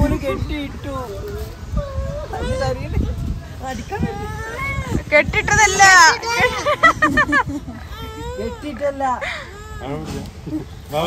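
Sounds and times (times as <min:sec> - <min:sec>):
toddler crying: 0:01.7 - 0:03.2, 0:03.8 - 0:06.8, 0:07.7 - 0:10.2.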